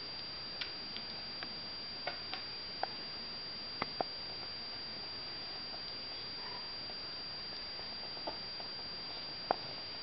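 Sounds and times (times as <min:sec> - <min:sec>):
high-pitched whine: 0:00.0 - 0:10.0.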